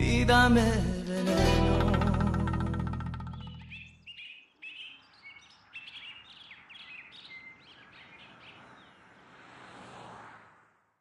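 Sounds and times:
cumbia song chord: 0:00.0 - 0:03.2
birds chirping: 0:01.8 - 0:09.4.

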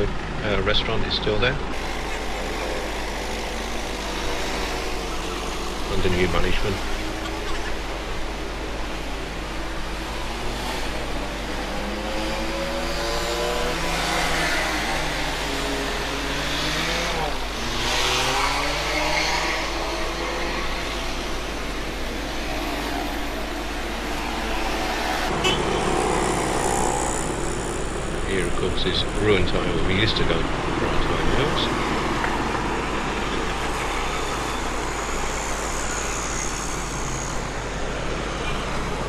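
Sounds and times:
car engines passing: 0:00.0 - 0:39.0
low road rumble: 0:00.0 - 0:39.0.

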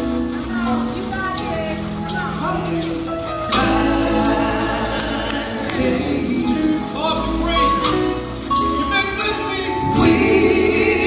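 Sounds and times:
gospel band playing: 0:00.0 - 0:11.0
voices singing held notes: 0:02.6 - 0:11.0.

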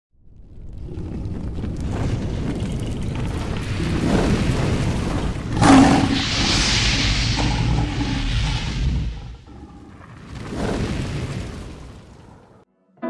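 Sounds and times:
low rumble: 0:00.2 - 0:12.5
hissing rush: 0:00.9 - 0:12.5
loud boom: 0:03.3 - 0:12.2.

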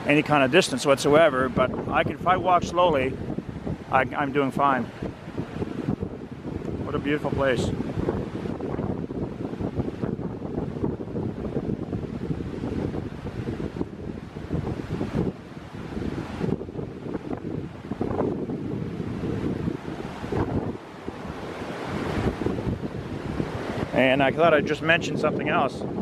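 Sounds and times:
river rushing over rapids: 0:00.0 - 0:26.0
wind buffeting microphone: 0:00.0 - 0:26.0.

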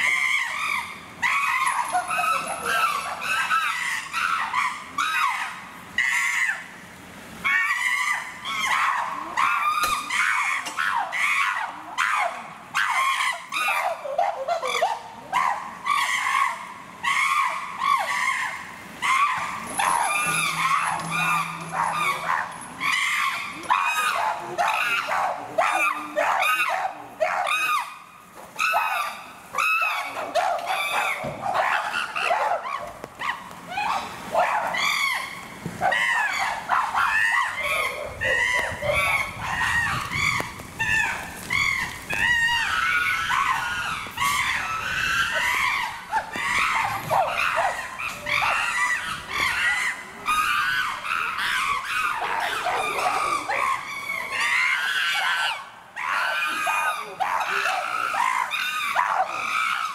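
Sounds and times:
chimpanzees screaming: 0:00.0 - 0:06.8, 0:07.4 - 0:59.9.

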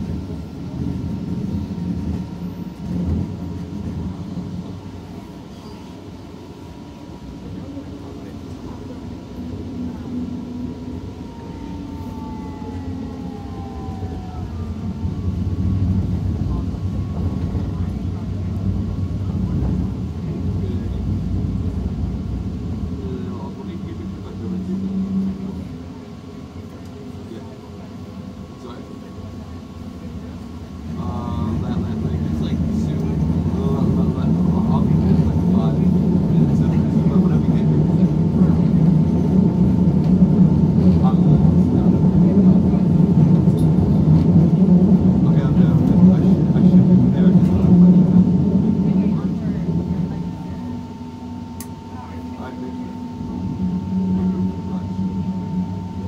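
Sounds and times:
light-rail train rumbling on track: 0:00.0 - 0:56.0
steady train whine: 0:00.0 - 0:56.0.

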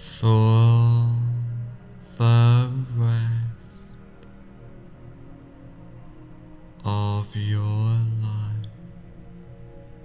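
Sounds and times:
man chanting a low tone: 0:00.0 - 0:04.0, 0:06.8 - 0:08.8
soft background music: 0:00.0 - 0:10.0.

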